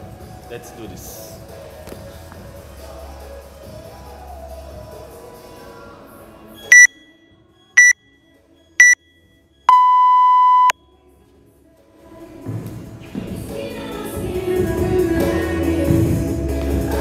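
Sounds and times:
background music: 0.0 - 9.6, 10.8 - 17.0
short high timer beeps: 6.7 - 7.0, 8.8 - 9.0, 9.7 - 10.7
long low timer beep: 6.7 - 7.1, 7.8 - 8.0, 8.8 - 9.1, 9.7 - 10.7.

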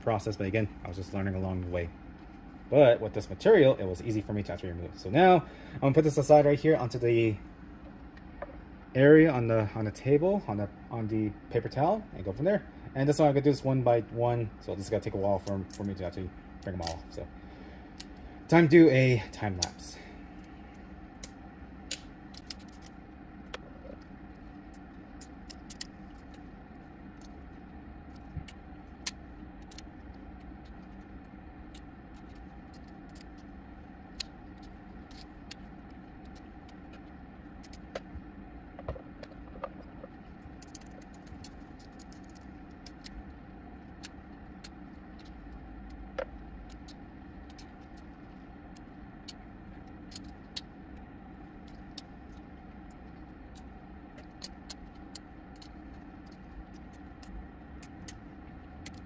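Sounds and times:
low background hum: 0.0 - 59.0.

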